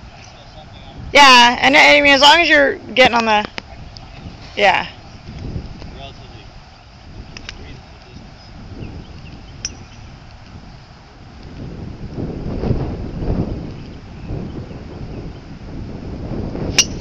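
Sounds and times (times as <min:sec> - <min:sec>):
wind buffeting microphone: 0:00.0 - 0:17.0
golf club striking ball: 0:09.6 - 0:10.0, 0:16.6 - 0:17.0.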